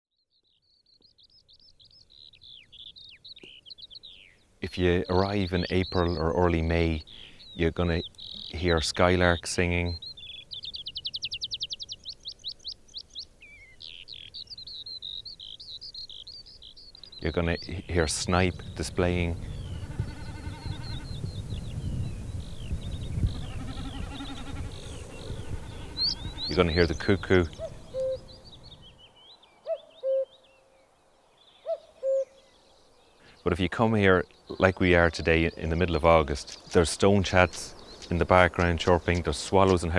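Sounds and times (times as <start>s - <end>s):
small birds chirping: 0.2s - 39.9s
skylark singing: 0.3s - 30.5s, 33.2s - 39.9s
cuckoo calling: 23.2s - 30.7s, 31.6s - 33.6s.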